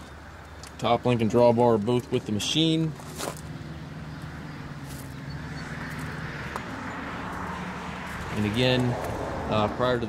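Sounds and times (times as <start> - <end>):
low engine hum: 0.0 - 10.0
footsteps crunching on gravel: 1.7 - 3.6, 4.2 - 6.7, 7.3 - 9.2.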